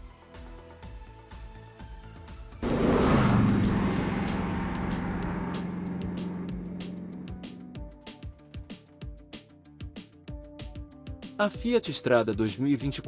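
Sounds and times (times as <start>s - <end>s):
loud hit with whoosh: 2.6s - 7.7s
low droning tone: 2.6s - 7.8s
faint background music: 10.4s - 13.0s.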